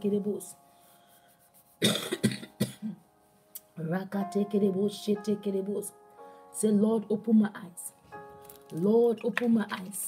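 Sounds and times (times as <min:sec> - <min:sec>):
woman coughing: 0:01.8 - 0:03.0.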